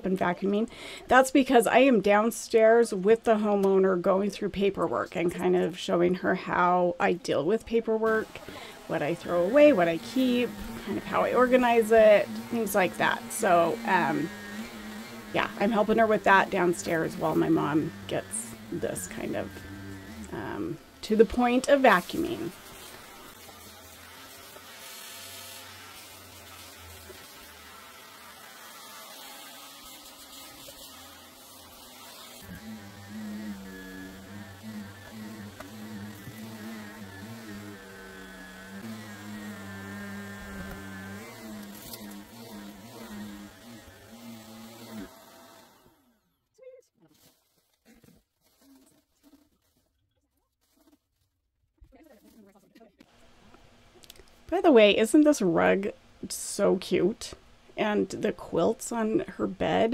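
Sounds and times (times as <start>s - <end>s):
vacuum cleaner on carpet: 7.7s - 45.9s.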